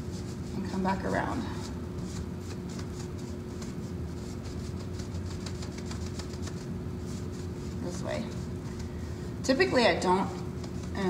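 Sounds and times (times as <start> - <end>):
paintbrush scrubbing on wood: 0.0 - 8.6
steady low hum: 0.0 - 11.0.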